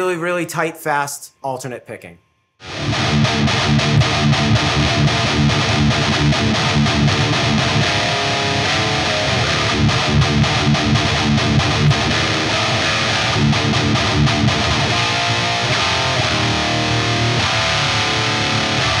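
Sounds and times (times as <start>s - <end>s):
distorted electric guitar riff: 2.6s - 19.0s.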